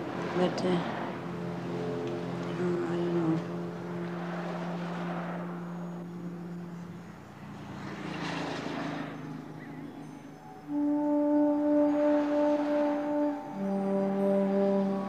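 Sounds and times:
traffic engine drone: 0:00.0 - 0:15.0
vehicle passing: 0:00.0 - 0:15.0.

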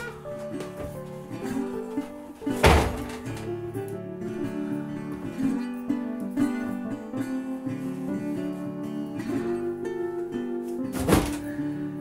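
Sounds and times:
acoustic guitar music: 0:00.0 - 0:12.0
heavy wooden thunk: 0:02.5 - 0:03.5, 0:10.9 - 0:11.6.

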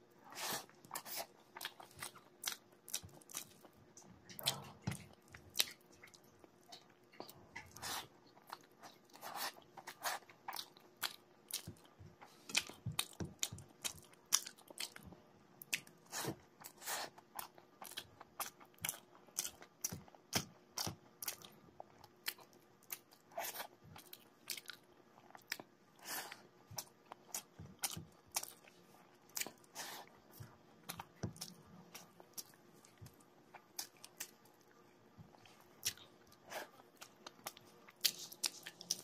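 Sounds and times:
person chewing food: 0:00.2 - 0:39.0.

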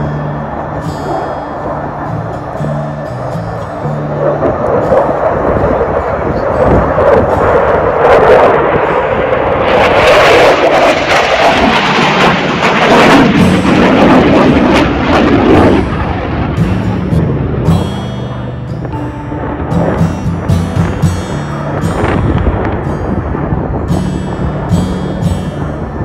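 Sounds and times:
fighter jet flying overhead: 0:00.0 - 0:26.0.

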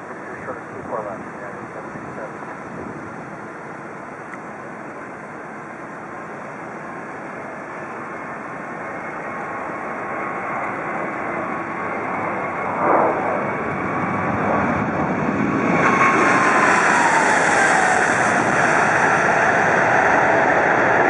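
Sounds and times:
jet engines at take-off thrust: 0:00.0 - 0:21.0
engine whine falling in pitch: 0:10.1 - 0:19.6.

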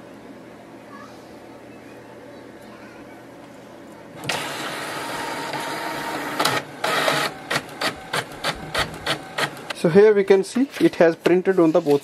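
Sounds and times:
printer mechanical whir: 0:04.1 - 0:09.9
printer short strokes: 0:04.2 - 0:09.7.

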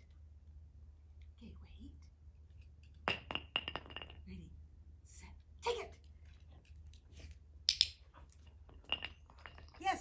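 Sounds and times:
metal clinking on paving stones: 0:02.7 - 0:04.3, 0:08.4 - 0:10.0.

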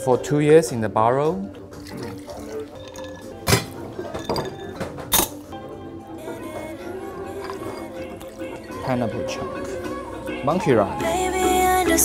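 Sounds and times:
background music: 0:00.0 - 0:12.0
bar spoon clinking ice in glass: 0:01.8 - 0:05.4, 0:07.4 - 0:08.4.

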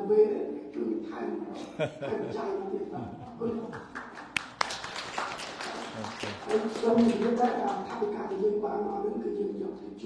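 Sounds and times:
audience hand claps: 0:03.7 - 0:08.2.

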